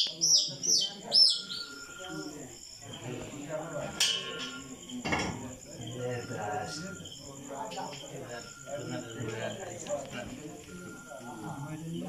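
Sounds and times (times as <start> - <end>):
bird chirping: 0.0 - 2.8
faint voices: 0.0 - 12.0.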